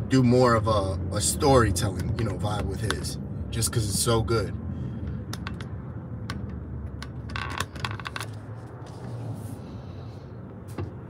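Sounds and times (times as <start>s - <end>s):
low car cabin hum: 0.0s - 11.0s.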